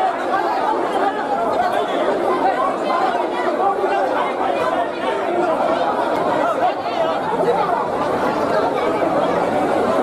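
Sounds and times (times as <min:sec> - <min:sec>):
crowd chatter indoors: 0:00.0 - 0:10.0.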